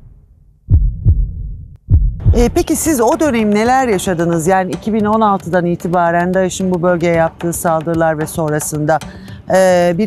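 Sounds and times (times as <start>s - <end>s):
heartbeat thumps: 0.0s - 3.8s
background music: 2.2s - 10.0s.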